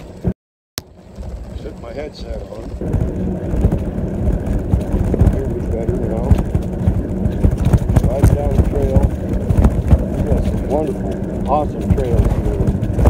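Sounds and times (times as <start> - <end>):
wind buffeting microphone: 0.9 - 13.0
muffled man's voice: 10.3 - 12.8.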